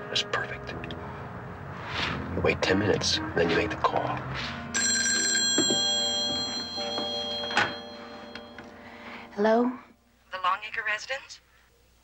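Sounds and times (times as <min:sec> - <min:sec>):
telephone bell ringing: 0:04.8 - 0:09.0.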